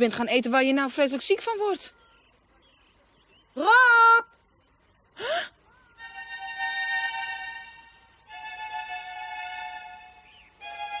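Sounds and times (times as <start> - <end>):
breathy gasp: 5.2 - 5.6.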